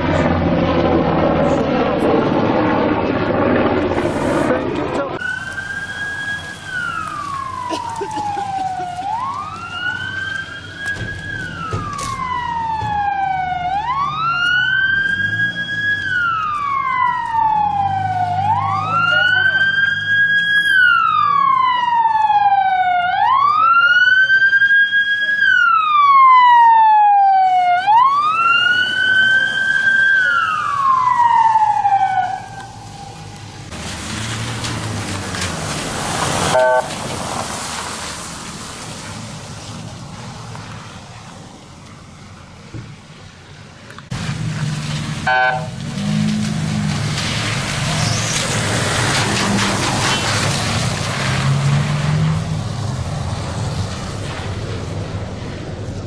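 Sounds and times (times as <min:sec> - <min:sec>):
emergency vehicle siren wailing: 0:00.0 - 0:40.2, 0:44.1 - 0:56.0.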